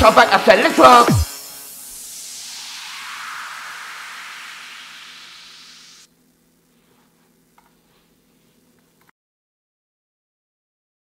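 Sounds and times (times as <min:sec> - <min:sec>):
white-noise sweep hiss: 0:00.0 - 0:08.7.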